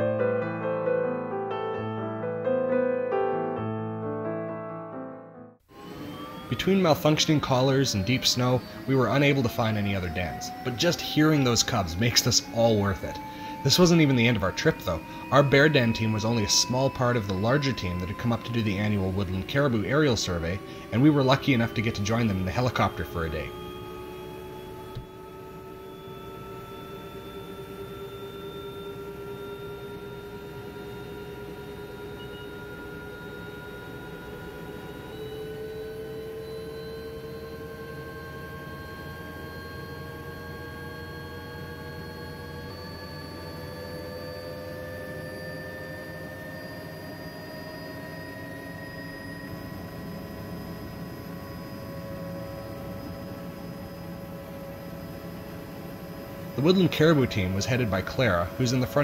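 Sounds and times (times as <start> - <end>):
helicopter turbine whine: 5.6 - 59.0.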